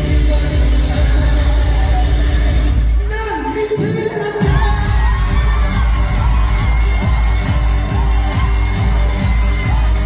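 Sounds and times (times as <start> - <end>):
loud live trot music: 0.0 - 10.0.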